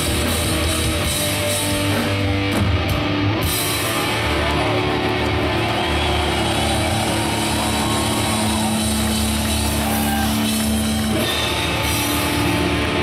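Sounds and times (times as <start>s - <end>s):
heavy metal band playing live: 0.0s - 13.0s.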